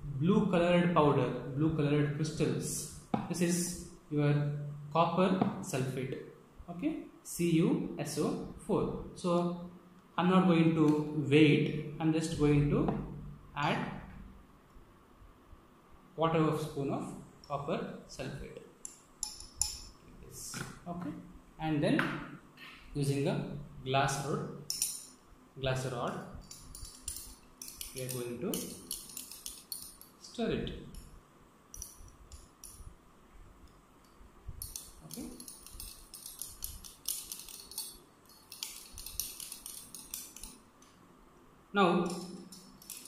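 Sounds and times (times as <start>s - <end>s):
metal spoon clinking on glass: 18.8s - 20.0s, 24.7s - 25.2s, 26.4s - 30.2s, 34.6s - 40.6s, 42.0s - 43.0s.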